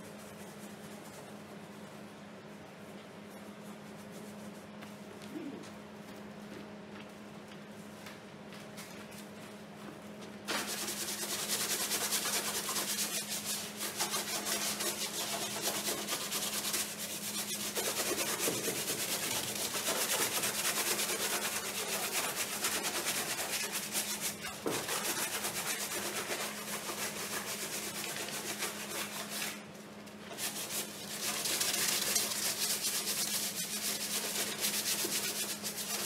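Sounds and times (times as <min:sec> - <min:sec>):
gloved hand scraping painted panel: 0:10.5 - 0:29.7, 0:30.3 - 0:36.0.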